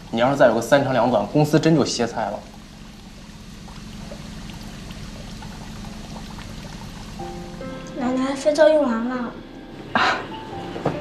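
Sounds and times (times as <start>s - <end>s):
tap water running into a sink: 0.0s - 8.5s
low steady hum: 0.0s - 11.0s.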